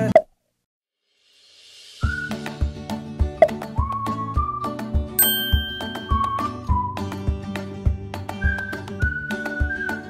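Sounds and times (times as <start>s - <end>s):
music: 1.0s - 10.0s
upbeat music with drum beat: 1.4s - 10.0s.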